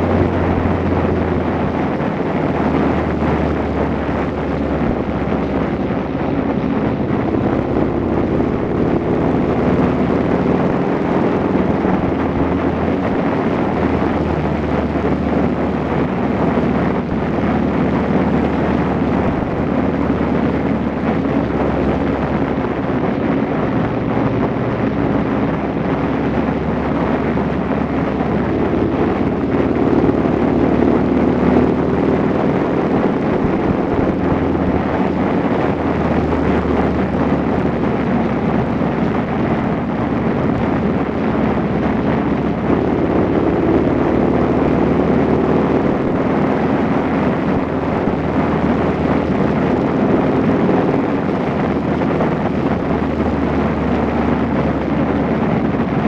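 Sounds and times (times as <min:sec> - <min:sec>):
motorcycle engine cruising: 0:00.0 - 0:56.0
wind on microphone: 0:00.0 - 0:56.0.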